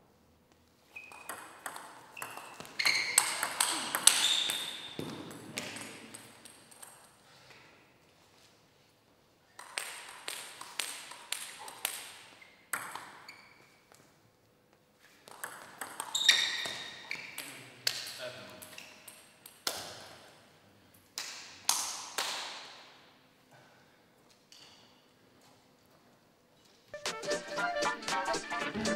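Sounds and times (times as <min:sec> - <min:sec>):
table tennis ball clicking: 0:01.1 - 0:04.7, 0:15.3 - 0:16.2.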